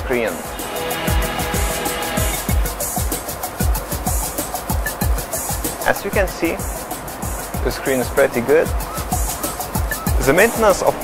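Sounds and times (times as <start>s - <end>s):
electronic beat music: 0.2s - 5.7s.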